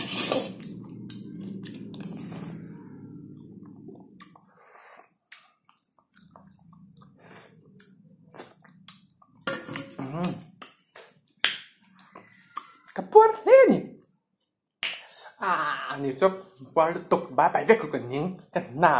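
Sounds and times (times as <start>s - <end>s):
lip-smacking clicks and chewing: 3.6s - 4.6s, 5.2s - 9.4s.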